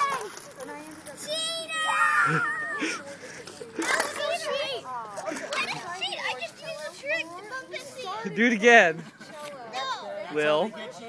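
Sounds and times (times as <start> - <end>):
children talking and laughing: 0.0 - 11.0.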